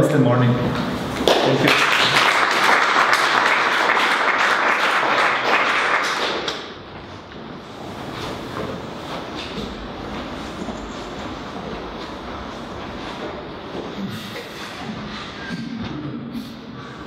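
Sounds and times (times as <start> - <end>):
audience applauding: 0.8 - 6.9.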